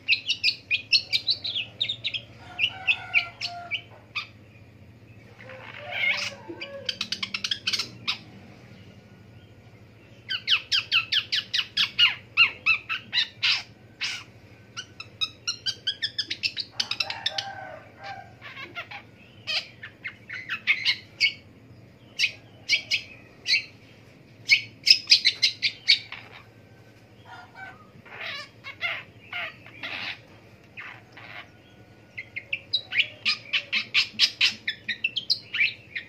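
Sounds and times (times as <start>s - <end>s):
shrike singing chattering song: 0.0s - 36.0s.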